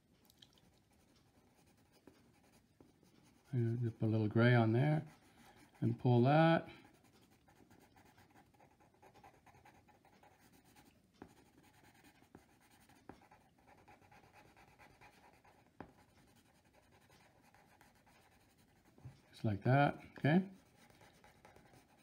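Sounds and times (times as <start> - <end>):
pencil point ticks: 0.4 - 4.2, 6.8 - 19.4, 20.4 - 22.0
pencil scratching on paper: 0.9 - 22.0.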